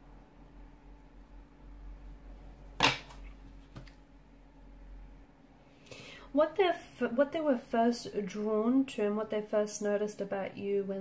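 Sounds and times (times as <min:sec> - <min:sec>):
handling of cards: 0:02.8 - 0:04.0.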